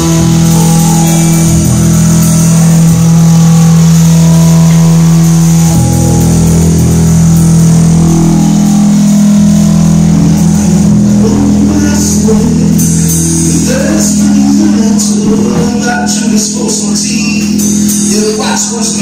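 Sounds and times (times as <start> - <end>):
rock band playing low chords: 0.0 - 19.0.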